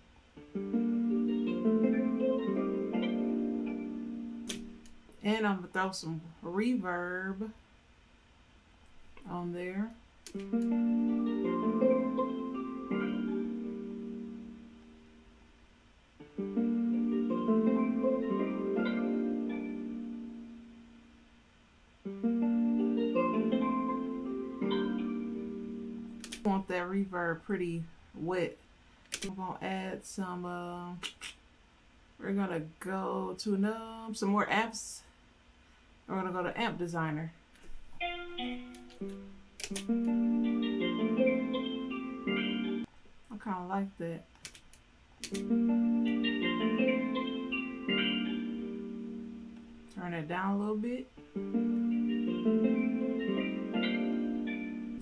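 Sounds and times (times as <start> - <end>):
plucked guitar melody with effects: 0.4 - 5.0, 10.3 - 14.9, 16.2 - 20.7, 22.1 - 26.3, 37.8 - 42.9, 45.3 - 50.0, 51.2 - 55.0.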